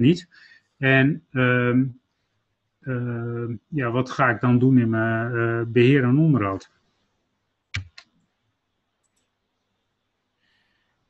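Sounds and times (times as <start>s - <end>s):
computer mouse clicks: 7.8s - 8.1s, 9.0s - 9.4s.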